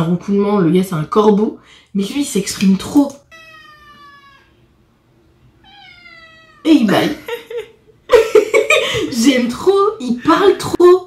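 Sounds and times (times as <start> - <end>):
cat meowing: 3.2 - 4.8, 5.6 - 6.8.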